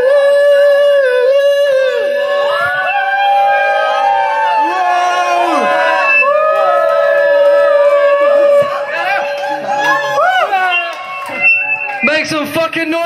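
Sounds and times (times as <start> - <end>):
steady held tone: 0.0 - 12.4
crowd singing and shouting: 1.0 - 12.3.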